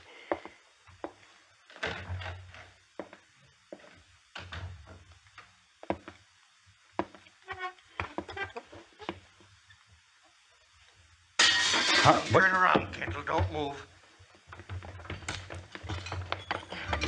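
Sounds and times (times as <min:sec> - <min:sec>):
knocks and thuds: 0:14.5 - 0:17.0.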